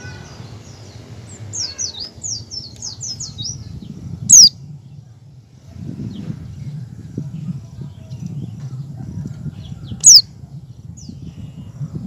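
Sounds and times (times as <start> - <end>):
sharp loud bird call: 0.0 - 0.8
bird chirping song: 0.0 - 12.0.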